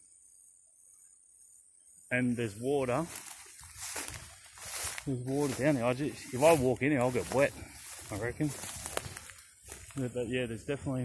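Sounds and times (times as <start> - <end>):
footsteps through grass: 2.2 - 11.0
wet grass rustling: 2.4 - 10.3
bright grass swishes: 2.6 - 10.0.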